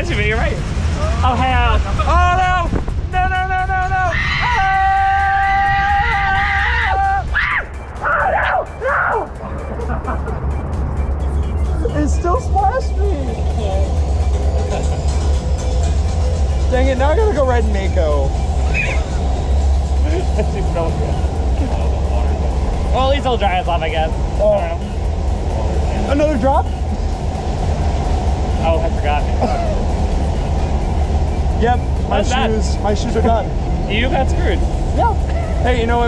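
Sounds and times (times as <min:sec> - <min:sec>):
wind on microphone: 0:00.0 - 0:07.7
riders yelling: 0:03.3 - 0:09.3
laughter and excited shouting: 0:03.3 - 0:10.4.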